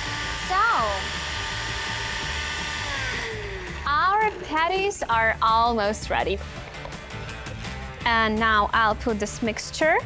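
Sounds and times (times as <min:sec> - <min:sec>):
blender motor whine: 0:00.0 - 0:04.7.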